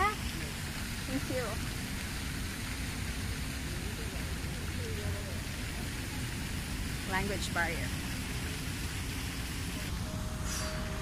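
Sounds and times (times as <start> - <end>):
rushing hiss: 6.4 - 11.0.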